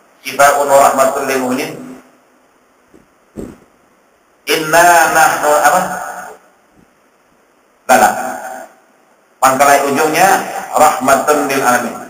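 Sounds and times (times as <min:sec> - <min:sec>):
man speaking: 0:00.2 - 0:01.9, 0:04.5 - 0:06.4, 0:07.9 - 0:08.4, 0:09.4 - 0:12.0.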